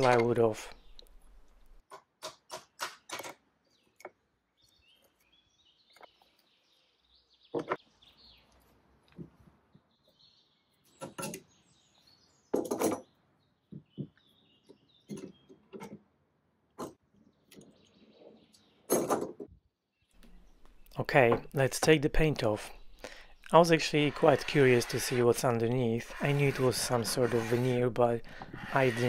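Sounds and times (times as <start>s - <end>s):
birdsong chirps: 0.0s - 1.8s, 2.6s - 19.1s, 19.8s - 28.9s
wooden knocks and thuds: 7.5s - 7.8s, 13.7s - 14.2s.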